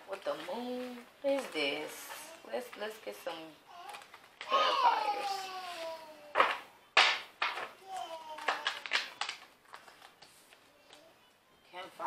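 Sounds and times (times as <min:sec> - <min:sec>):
card slap: 0:06.3 - 0:09.4.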